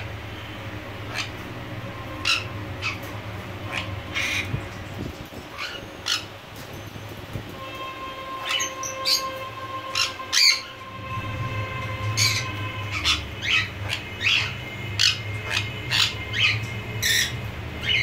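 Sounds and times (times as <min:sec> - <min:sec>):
low steady rumble: 0:00.0 - 0:18.0
parrot shrill calls: 0:02.1 - 0:04.5, 0:05.5 - 0:06.3, 0:08.3 - 0:10.8, 0:12.1 - 0:18.0.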